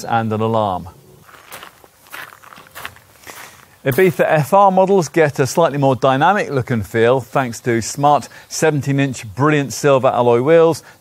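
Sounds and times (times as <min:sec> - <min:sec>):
footsteps crunching on gravel: 0:01.2 - 0:05.6.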